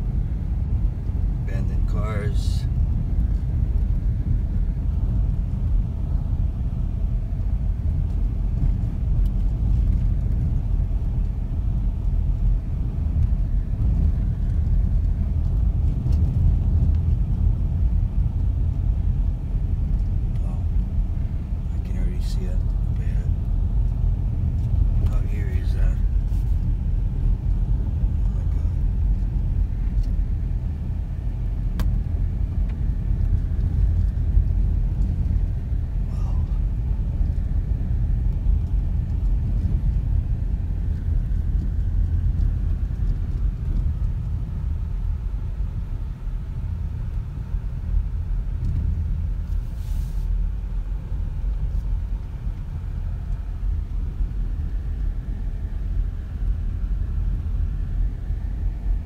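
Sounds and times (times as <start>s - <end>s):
car driving on paved road: 0.0s - 59.0s.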